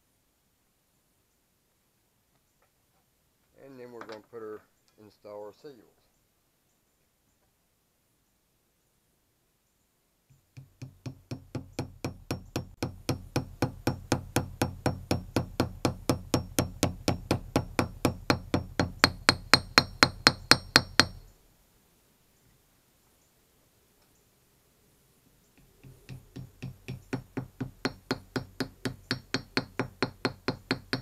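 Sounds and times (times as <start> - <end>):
hammer tapping metal: 10.3 - 21.3, 25.6 - 31.0.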